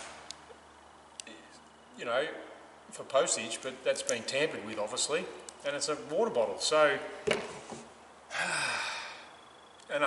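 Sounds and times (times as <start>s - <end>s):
man sighing: 8.3s - 9.4s.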